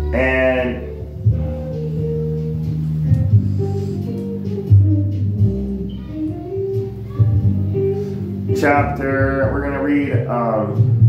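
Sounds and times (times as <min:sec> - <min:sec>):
background music low notes: 0:00.0 - 0:11.0.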